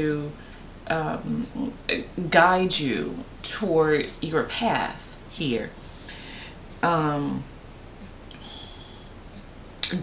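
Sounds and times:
woman talking: 0:00.0 - 0:07.5, 0:08.3 - 0:08.7.

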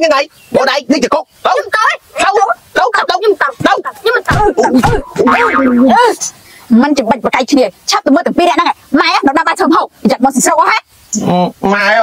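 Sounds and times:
comedy boing sound effect: 0:04.8 - 0:06.0.

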